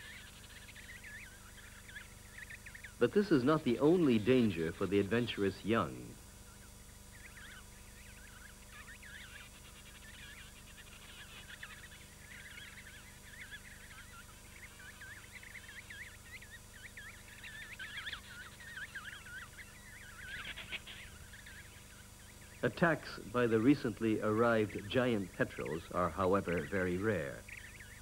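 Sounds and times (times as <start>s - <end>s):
penguin chicks whistling calls: 0.0s - 4.6s, 6.4s - 28.0s.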